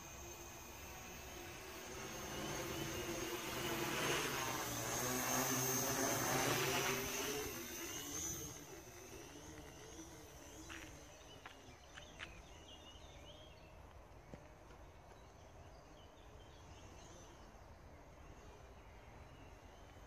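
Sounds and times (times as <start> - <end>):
quadcopter propeller buzz: 0.0 - 13.6.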